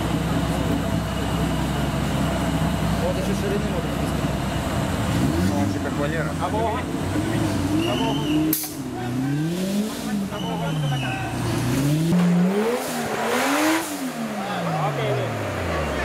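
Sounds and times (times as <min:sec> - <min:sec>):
engine revving: 0:02.9 - 0:16.0.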